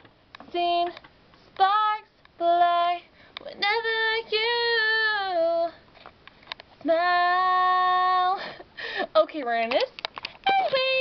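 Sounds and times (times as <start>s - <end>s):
girl singing unaccompanied: 0.4s - 5.9s, 6.8s - 11.0s
girl taking a breath: 8.5s - 9.2s.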